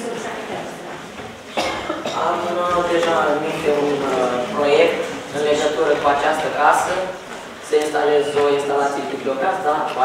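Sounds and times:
speech in a room: 0.0s - 10.0s
sharp cough: 1.5s - 2.4s.

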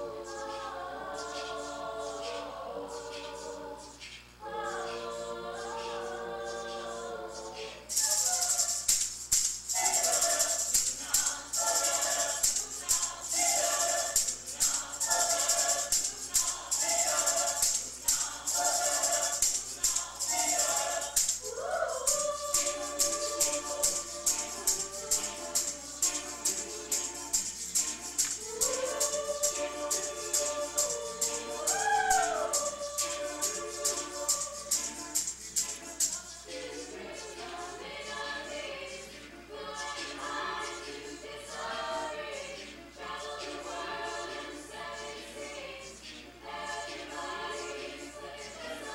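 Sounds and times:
tambourine shaken: 0.0s - 48.9s
vocal ensemble singing: 0.0s - 48.9s.

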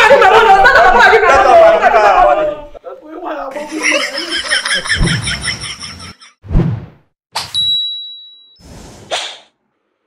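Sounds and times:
bright ding: 7.4s - 8.6s.

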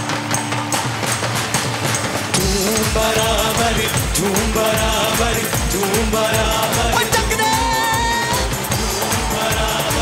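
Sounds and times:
live instrumental band music: 0.0s - 10.0s.

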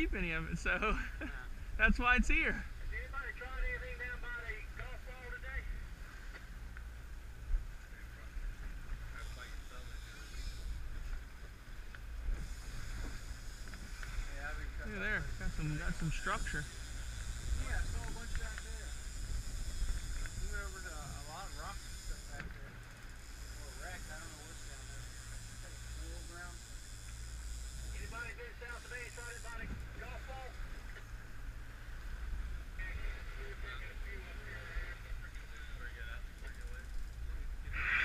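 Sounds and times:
outboard motors droning: 0.0s - 38.0s
wind and water hiss: 0.0s - 38.0s
faint voices: 32.6s - 38.0s.

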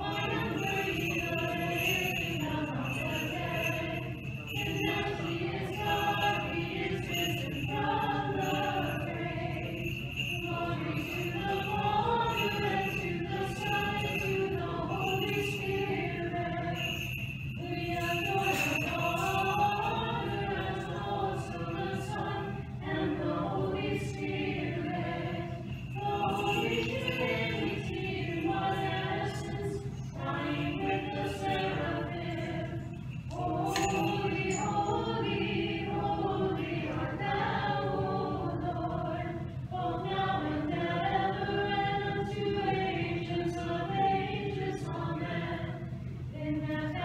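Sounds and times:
church choir singing a cappella: 0.0s - 47.0s.

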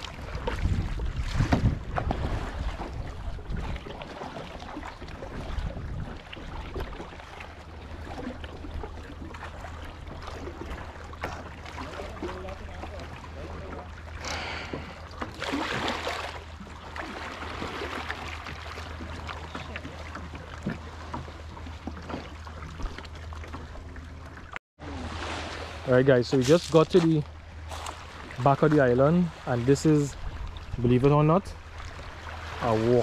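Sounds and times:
kayak paddle splashing: 0.0s - 31.0s, 31.6s - 33.0s
water lapping at hull: 0.0s - 33.0s.

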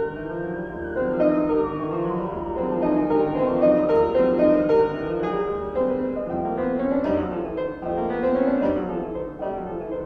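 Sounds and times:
grand piano classical music: 0.0s - 10.0s.

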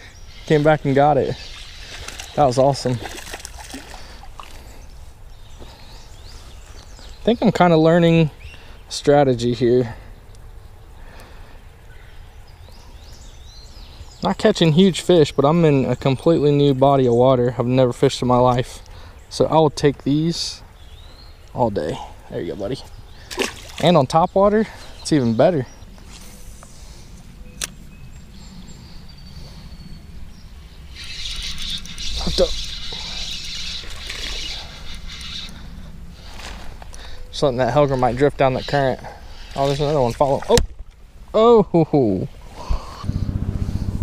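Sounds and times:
low rumble of wind or water: 22.2s - 38.4s, 42.3s - 44.0s
faint bird calls: 24.4s - 40.1s
faint thin bird calls: 30.9s - 37.3s
low rumble: 42.9s - 44.0s.

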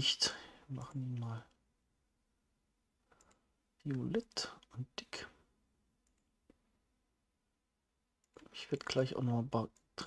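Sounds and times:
computer mouse clicks: 3.1s - 4.2s, 6.0s - 6.6s.

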